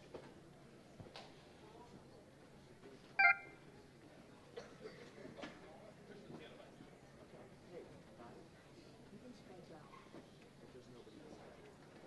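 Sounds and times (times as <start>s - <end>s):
short two-pitch beep: 3.2s - 3.6s.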